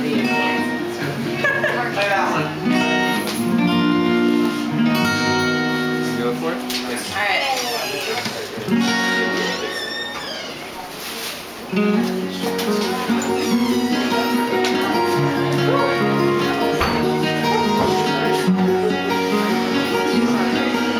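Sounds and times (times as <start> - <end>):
acoustic guitars playing: 0.0 - 20.9
person singing: 13.2 - 20.9.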